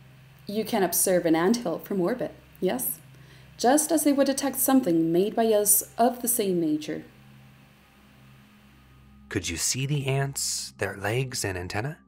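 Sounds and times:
faint low hum with hiss: 0.0 - 12.0.

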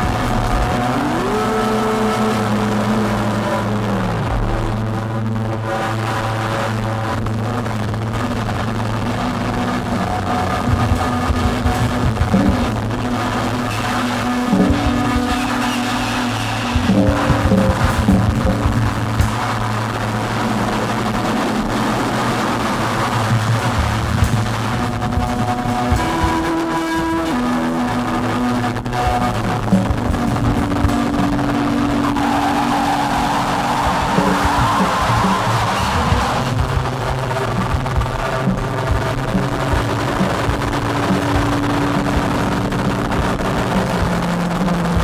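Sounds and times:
acoustic drum kit: 0.0 - 4.8, 8.1 - 45.0
band of noise: 0.0 - 45.0
electronic synthesizer tones: 0.0 - 45.0
low drone: 0.0 - 45.0.

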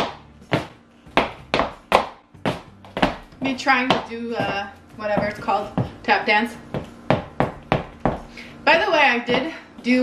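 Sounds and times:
high heels clicking on floor: 0.0 - 10.0.

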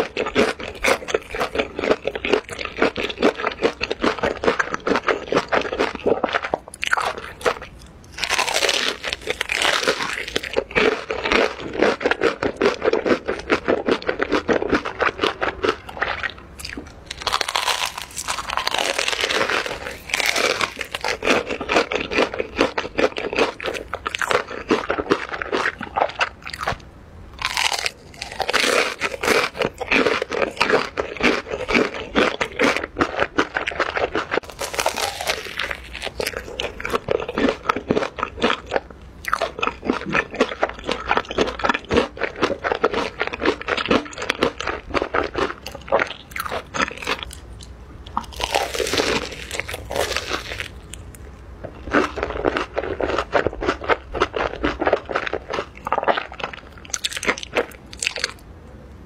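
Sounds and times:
crunchy food chewing: 0.0 - 58.4.

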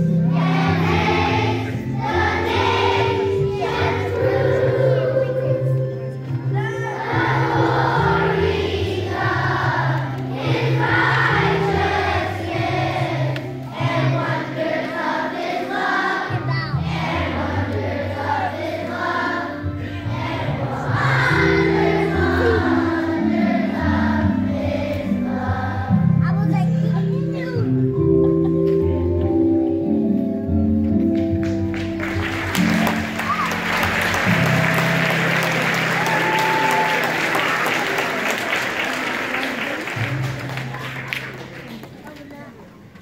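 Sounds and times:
children's choir singing: 0.0 - 26.2.

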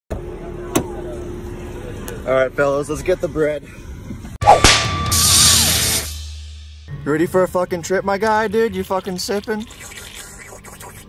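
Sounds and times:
faint voices: 0.1 - 3.9.

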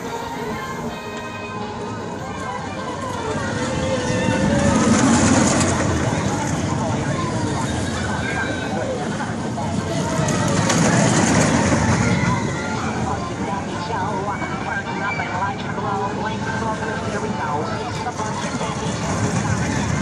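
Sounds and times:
crowd voices: 0.0 - 20.0
roller coaster rumbling on track: 0.0 - 20.0.

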